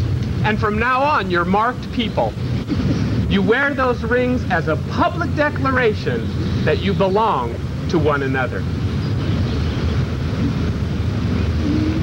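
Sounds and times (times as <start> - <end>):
low wind rumble: 0.0 - 12.0.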